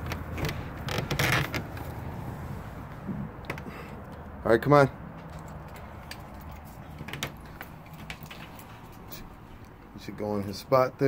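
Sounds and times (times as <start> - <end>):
door hinges creaking: 0.0 - 2.1, 3.0 - 3.9, 6.9 - 8.8.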